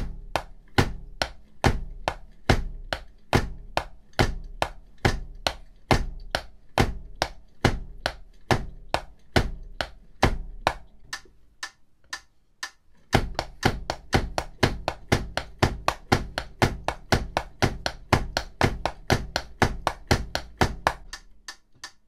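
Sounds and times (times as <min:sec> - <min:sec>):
bass drum thud: 0:00.0 - 0:10.9, 0:13.1 - 0:21.2
drumsticks tapping: 0:00.3 - 0:22.0
metronome clicking: 0:10.6 - 0:22.0.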